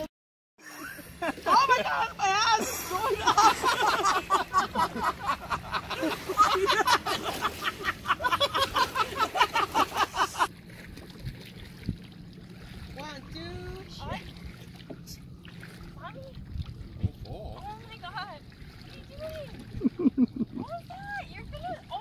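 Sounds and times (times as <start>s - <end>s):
lake water: 0.0s - 22.0s
group voices in water: 1.3s - 8.1s, 17.0s - 22.0s.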